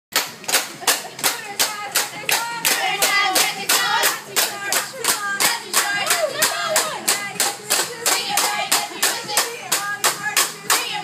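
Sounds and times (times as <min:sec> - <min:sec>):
group clapping in rhythm: 0:00.1 - 0:11.0
voices singing along: 0:01.0 - 0:11.0.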